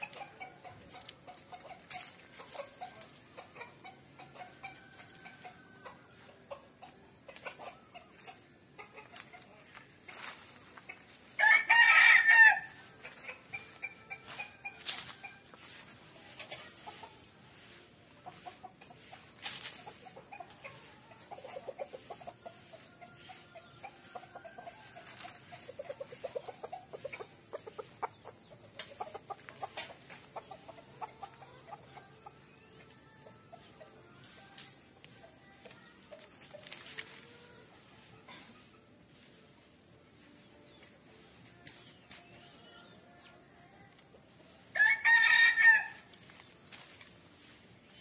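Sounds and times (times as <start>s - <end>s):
chicken clucking: 0.0s - 11.8s, 12.4s - 48.0s
rooster crowing: 11.4s - 12.8s, 44.8s - 46.0s.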